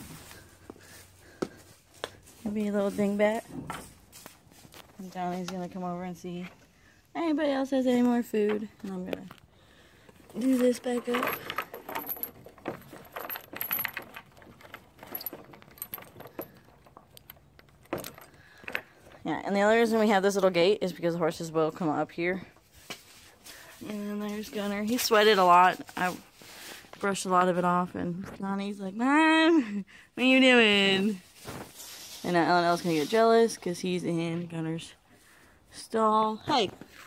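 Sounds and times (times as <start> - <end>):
quiet background noise: 0.0 - 37.0
metal buckle clinking: 10.2 - 19.2.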